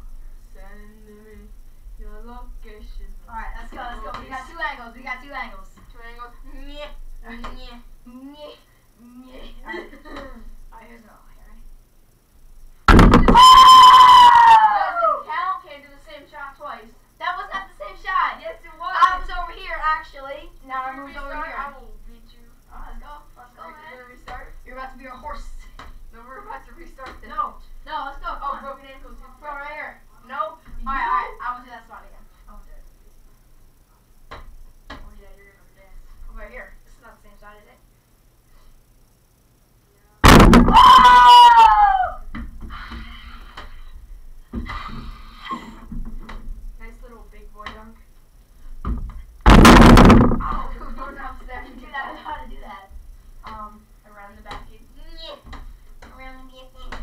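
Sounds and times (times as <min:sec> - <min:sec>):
loud thump against hoop: 0:12.9 - 0:13.4, 0:40.2 - 0:40.8, 0:48.8 - 0:50.7
sudden loud noisy burst: 0:12.9 - 0:14.3, 0:40.2 - 0:41.2, 0:49.4 - 0:50.6
high-pitched scream: 0:13.1 - 0:15.3, 0:40.3 - 0:42.3.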